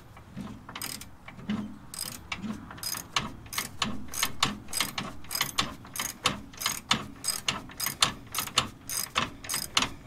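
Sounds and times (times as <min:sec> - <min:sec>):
ratchet wrench clicking: 0:00.8 - 0:01.1, 0:01.9 - 0:02.2, 0:02.8 - 0:09.9.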